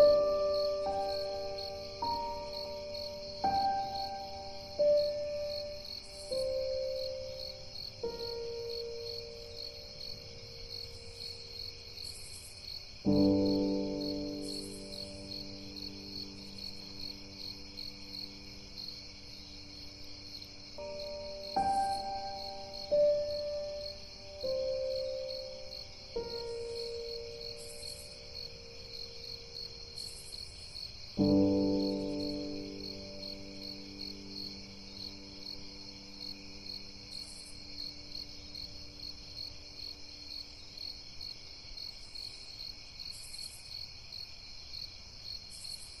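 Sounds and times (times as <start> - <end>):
soft relaxing music: 0.0 - 41.1
crickets chirping: 0.0 - 46.0.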